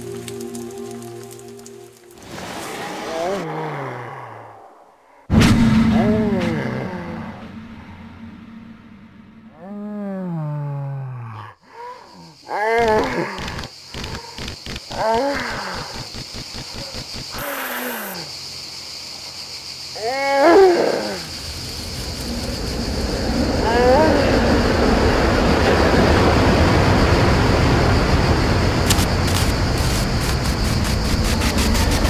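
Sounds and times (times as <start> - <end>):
quick run of clicks: 13.0 - 15.0, 15.7 - 17.4
steady high hiss: 21.0 - 32.0.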